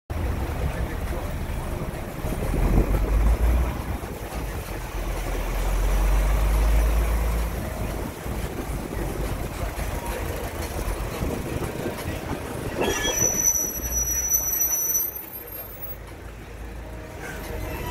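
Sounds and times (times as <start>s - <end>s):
diesel engines idling: 0.1s - 17.9s.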